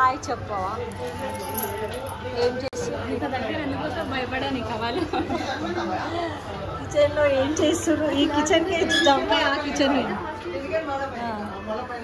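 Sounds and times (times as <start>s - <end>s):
people talking and chattering: 0.0s - 12.0s.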